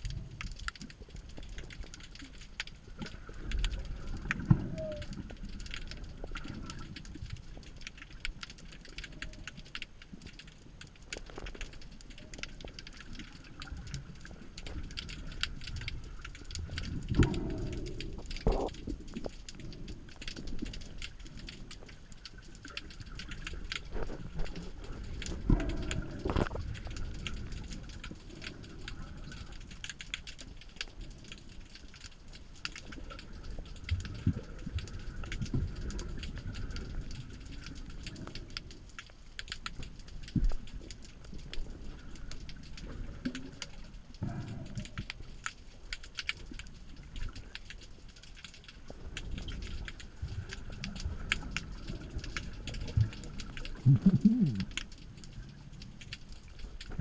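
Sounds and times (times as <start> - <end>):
fine underwater clicks: 0.0 - 57.0
low rumble of water movement: 0.0 - 57.0
low water surges: 0.0 - 57.0.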